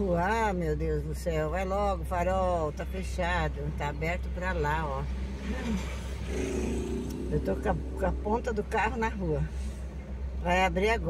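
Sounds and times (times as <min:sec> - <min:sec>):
car engine and road rumble: 0:00.0 - 0:11.0
steady mid-pitched tone: 0:06.9 - 0:10.3.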